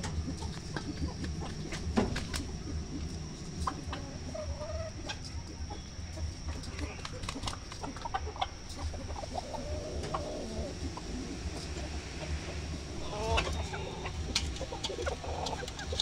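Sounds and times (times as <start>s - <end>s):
chickens clucking: 0.0s - 16.0s
drawn-out wavering call: 9.3s - 16.0s.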